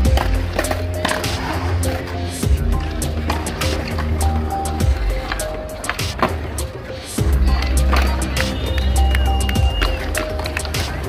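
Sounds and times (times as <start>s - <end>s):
music with heavy bass: 0.0s - 11.0s
skateboard clacks: 0.0s - 11.0s
skateboard wheels rolling on concrete: 0.0s - 11.0s.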